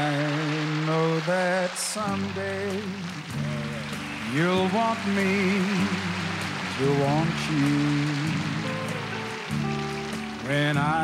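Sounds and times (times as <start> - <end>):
man singing: 0.0 - 9.2, 10.4 - 11.0
country band sustained chord: 0.0 - 11.0.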